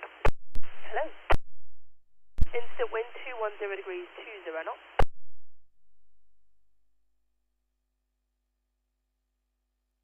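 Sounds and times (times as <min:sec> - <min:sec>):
radio hiss: 0:00.0 - 0:01.4, 0:02.4 - 0:05.0
person speaking over radio: 0:02.6 - 0:04.8.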